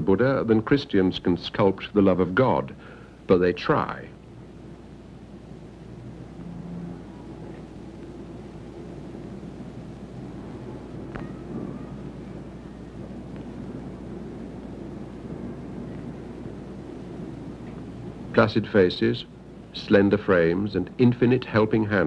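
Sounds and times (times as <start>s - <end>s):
low rumble with hiss: 0.0s - 22.0s.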